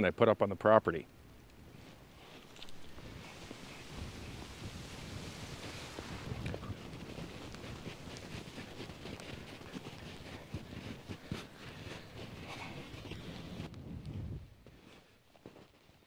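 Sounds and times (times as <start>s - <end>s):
wind rumbling on microphone: 1.2s - 14.8s
footsteps crunching in snow: 1.6s - 16.0s.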